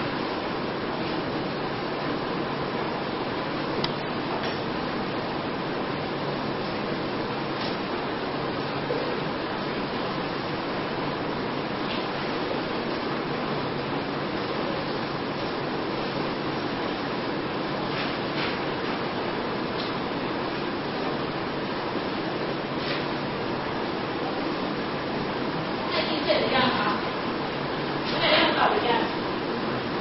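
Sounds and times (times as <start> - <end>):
hissing room noise: 0.0 - 30.0.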